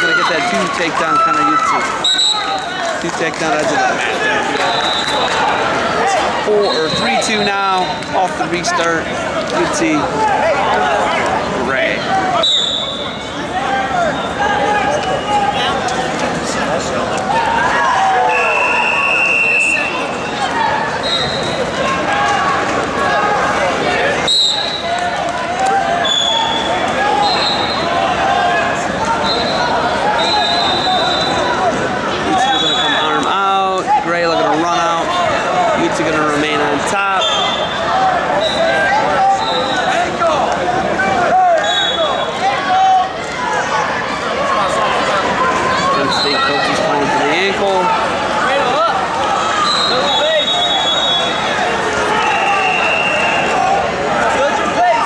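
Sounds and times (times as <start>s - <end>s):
crowd and coaches' voices: 0.0s - 55.0s
referee whistle blast: 2.0s - 2.6s, 12.4s - 13.4s, 18.2s - 20.4s, 30.2s - 31.5s, 32.4s - 33.3s, 37.2s - 37.8s, 41.6s - 42.4s, 49.6s - 51.5s, 52.1s - 53.6s.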